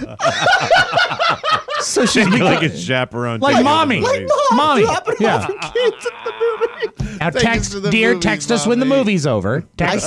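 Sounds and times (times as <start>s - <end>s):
man laughing hard: 0.0s - 2.7s, 4.4s - 7.4s.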